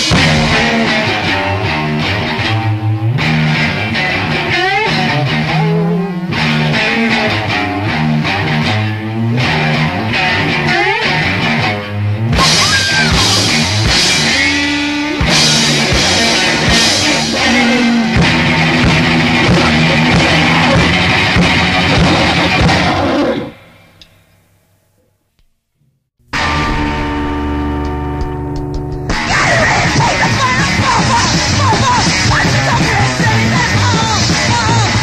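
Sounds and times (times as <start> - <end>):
held ringing guitar notes: 0.0 - 22.8, 26.3 - 32.3
loud noise rock band: 0.0 - 24.1, 26.3 - 35.0.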